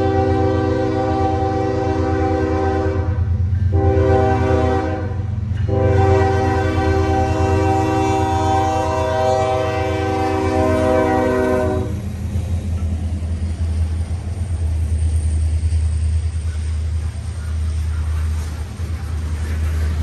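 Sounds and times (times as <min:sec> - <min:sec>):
locomotive air horn blasts: 0:00.0 - 0:12.1
diesel engine rumble: 0:10.4 - 0:20.0.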